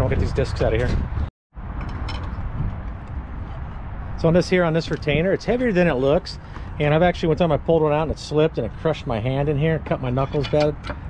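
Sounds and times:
steady outdoor rush: 0.0 - 11.0.

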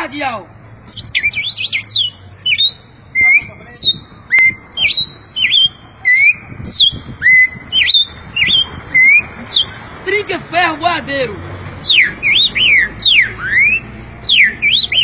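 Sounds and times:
man whistling bird song: 0.9 - 9.7, 11.9 - 15.0.

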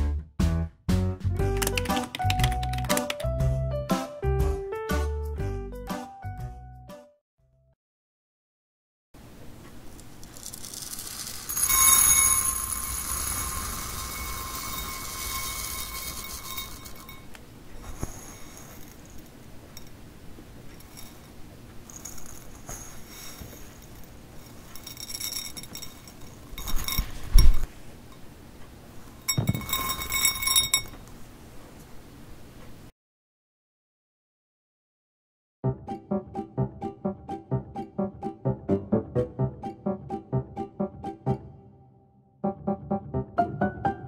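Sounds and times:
granules poured into glass bowl: 10.1 - 17.3, 17.9 - 19.2, 21.9 - 27.2
glass bowl ringing: 11.5 - 17.4, 29.3 - 31.0.

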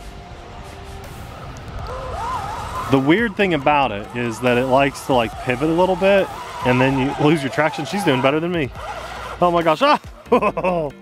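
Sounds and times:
wind rumble on microphone: 0.0 - 9.5
electric motors whining: 0.0 - 10.4.

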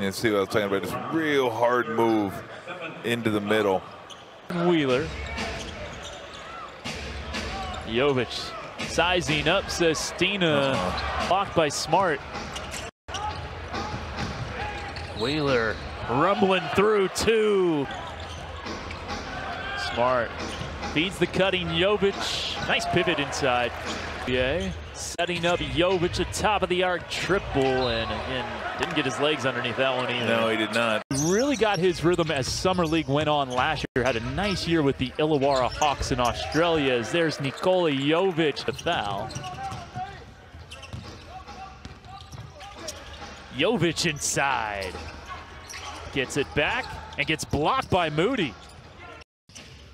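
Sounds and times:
faint voices in arena: 0.0 - 49.2.

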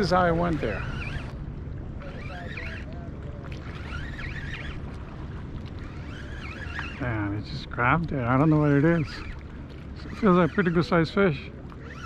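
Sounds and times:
water moving: 0.0 - 12.0.

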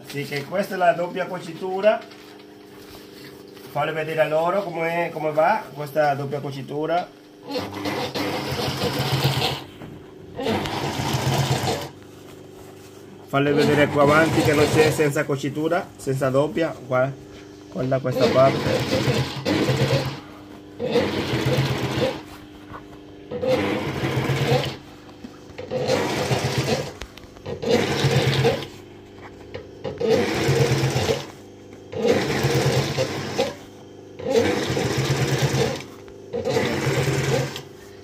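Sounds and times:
industrial sewing machine stitching: 7.4 - 9.7, 10.4 - 12.0, 13.4 - 15.3, 17.8 - 22.3, 23.3 - 24.8, 25.6 - 28.8, 29.8 - 37.7.

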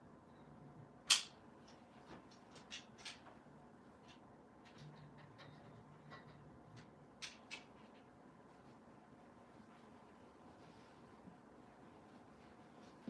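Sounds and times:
satin fabric rustling: 7.8 - 13.0.

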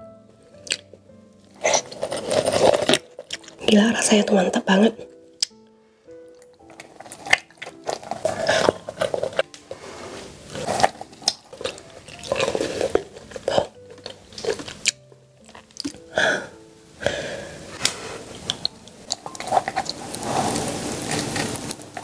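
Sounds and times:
quiet background music: 0.0 - 22.0
wet biting and chewing: 0.6 - 0.9, 1.5 - 3.6, 6.3 - 9.7, 10.5 - 16.0, 17.8 - 22.0.

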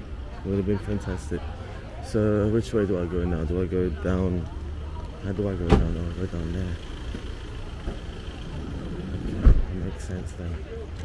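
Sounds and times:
traffic rumble: 0.0 - 11.0
loud low thump: 9.2 - 9.7.

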